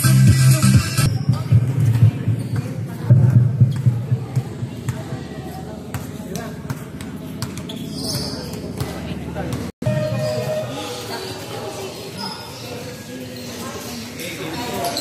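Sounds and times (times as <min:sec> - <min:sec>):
people talking: 0:00.0 - 0:15.0
basketball bouncing on concrete: 0:01.2 - 0:09.7.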